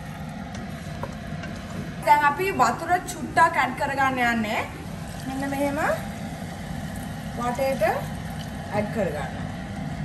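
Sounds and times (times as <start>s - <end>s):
water pouring into a pot: 4.8s - 10.0s.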